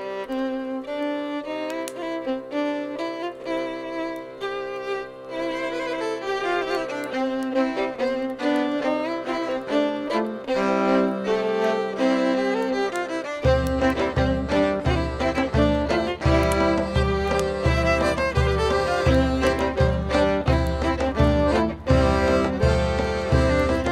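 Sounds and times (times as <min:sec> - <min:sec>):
accordion: 0:00.0 - 0:23.9
fiddle melody: 0:00.0 - 0:23.9
low steady beat: 0:13.2 - 0:23.9.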